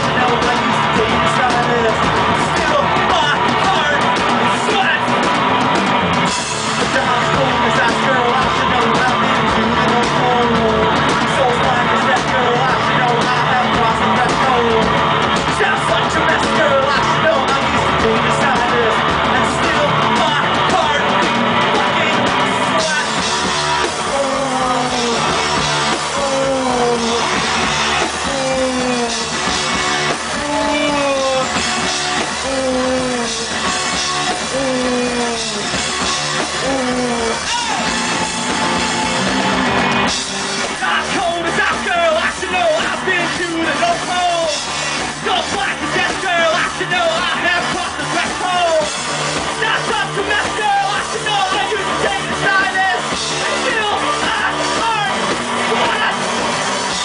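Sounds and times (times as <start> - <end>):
man singing: 0.0 - 5.1, 6.8 - 23.3, 23.9 - 29.4, 30.3 - 31.6, 32.2 - 33.6, 34.3 - 35.8, 36.4 - 37.9
distorted electric guitar: 0.0 - 57.0
drums: 0.0 - 57.0.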